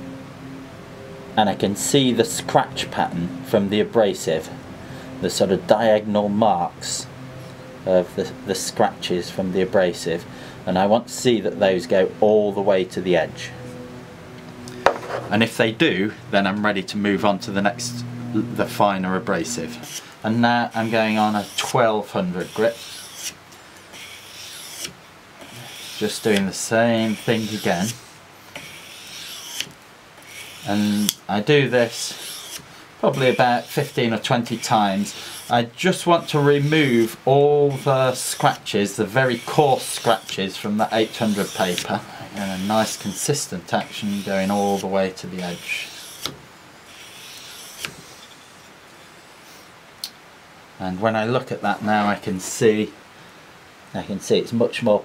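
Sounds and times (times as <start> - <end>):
sharp scrape: 19.4 - 20.1, 20.7 - 21.8, 22.4 - 26.4, 27.0 - 31.2, 31.8 - 35.6, 36.2 - 48.7
blade rasping on abrasive paper: 19.4 - 48.6.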